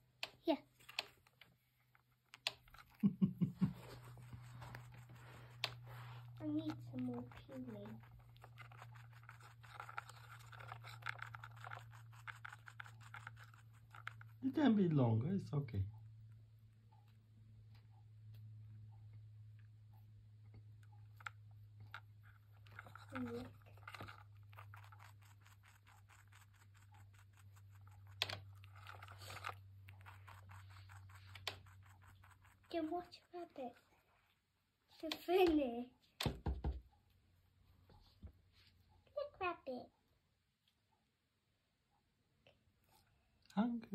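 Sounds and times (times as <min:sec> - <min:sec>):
rabbit nibbling and scraping: 0:00.6 - 0:03.0, 0:03.6 - 0:15.1, 0:20.6 - 0:35.8
sharp clicks: 0:02.2 - 0:03.0.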